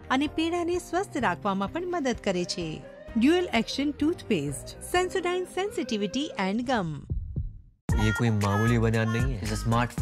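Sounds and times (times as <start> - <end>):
background music: 0.0 - 7.1, 7.9 - 10.0
advert voice-over: 7.9 - 10.0.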